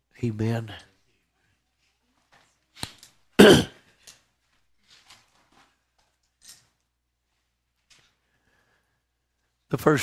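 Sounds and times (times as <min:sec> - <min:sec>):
man clearing his throat: 0:03.4 - 0:03.8.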